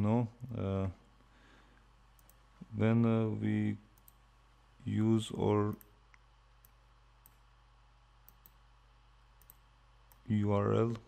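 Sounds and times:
low electrical hum: 0.0 - 11.0
computer mouse clicks: 2.1 - 2.4, 4.0 - 4.2, 8.2 - 8.6, 9.4 - 10.3.

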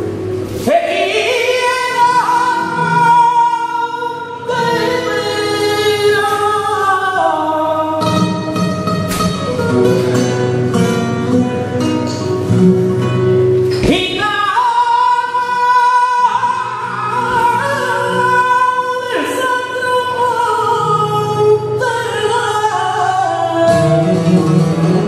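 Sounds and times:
flamenco guitar: 0.0 - 25.0
man singing flamenco: 0.6 - 10.6, 13.8 - 25.0.

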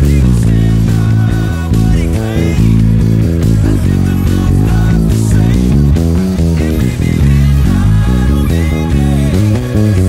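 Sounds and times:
electric bass plucked: 0.0 - 10.0
pop song band track: 0.0 - 10.0.

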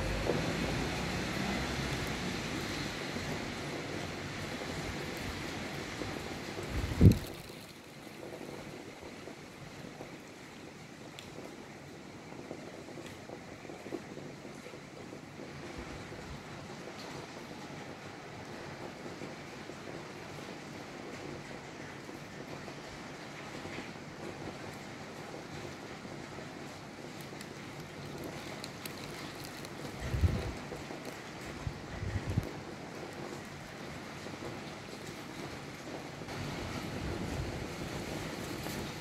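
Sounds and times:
rain hissing: 0.0 - 39.0
wind: 0.0 - 39.0
wind buffeting microphone: 4.8 - 7.4, 29.8 - 34.6.

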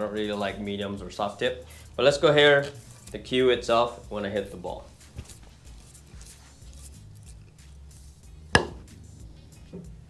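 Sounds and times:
pool cue striking ball: 8.5 - 10.0.

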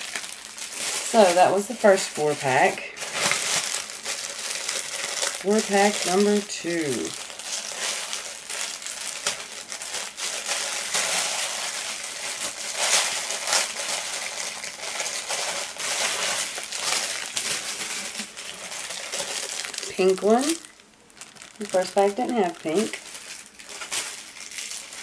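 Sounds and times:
plastic bag crinkling: 0.0 - 25.0.

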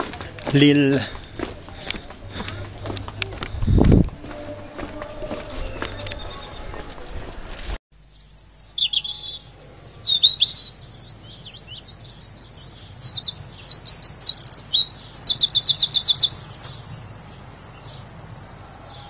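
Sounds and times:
songbird singing: 0.0 - 18.2.

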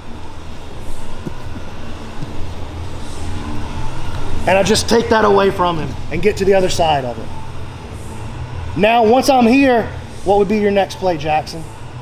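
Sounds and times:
drum fan rumbling: 0.0 - 4.8.

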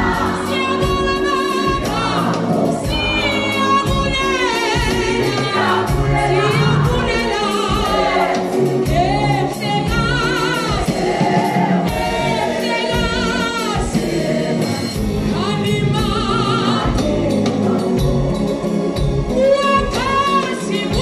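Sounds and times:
gospel choir singing: 0.0 - 21.0
steady beat: 0.0 - 21.0.

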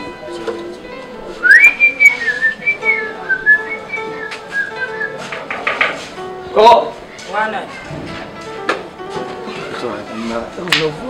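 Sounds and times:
person whistling a tune: 1.4 - 5.3.

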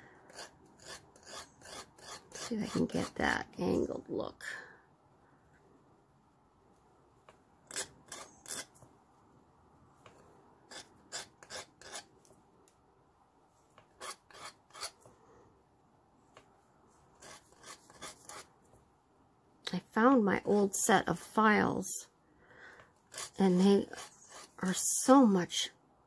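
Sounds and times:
file rasping metal: 0.2 - 3.2, 7.7 - 8.7, 10.7 - 12.1, 13.9 - 15.0, 17.2 - 18.5, 23.0 - 24.7.

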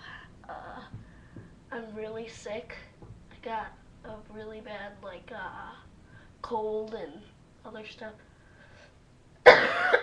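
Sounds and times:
boy coughing: 9.4 - 10.0.

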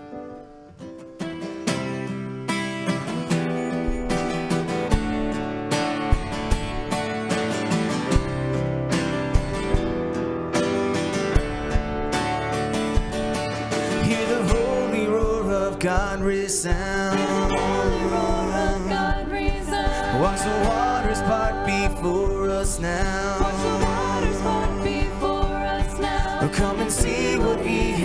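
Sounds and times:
strummed acoustic guitar: 0.0 - 28.0
band playing: 1.4 - 28.0
steady drum beat: 3.4 - 28.0.

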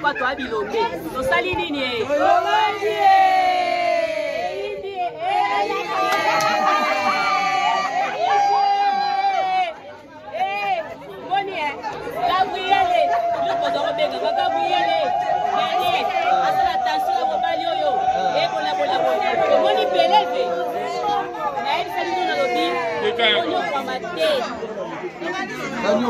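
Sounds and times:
people chattering: 0.0 - 26.0.

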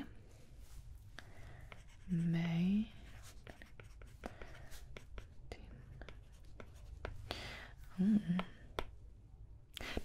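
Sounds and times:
pen scratching on paper: 1.7 - 5.4, 6.0 - 7.2.

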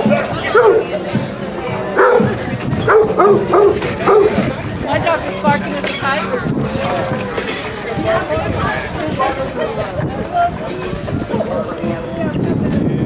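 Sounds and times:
people talking: 0.0 - 13.0
dog barking: 0.5 - 0.9, 2.0 - 4.4.

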